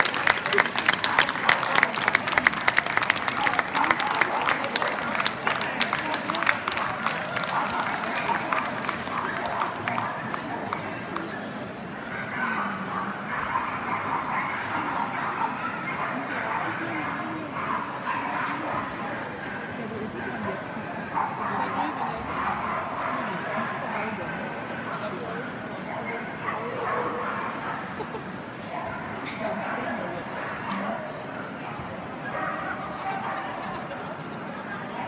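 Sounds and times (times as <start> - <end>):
people clapping: 0.0 - 11.5
crowd chatter: 0.0 - 35.0
dogs yapping and barking: 30.4 - 34.3.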